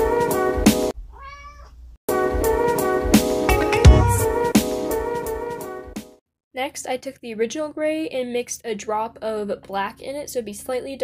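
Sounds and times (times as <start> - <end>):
jazzy background music: 0.0 - 0.9, 2.1 - 6.2
faint cat meow: 1.1 - 1.8.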